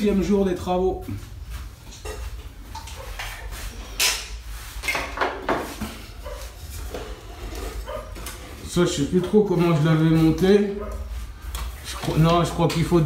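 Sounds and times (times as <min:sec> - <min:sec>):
knocks and clatter of hand work: 0:04.0 - 0:06.2.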